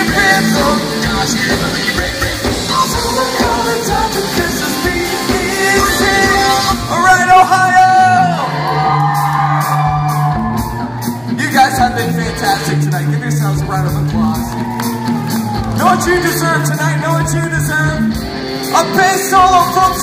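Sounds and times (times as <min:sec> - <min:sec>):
person singing: 0:00.0 - 0:08.2
drums: 0:00.0 - 0:20.0
live pop-rock band: 0:00.0 - 0:20.0.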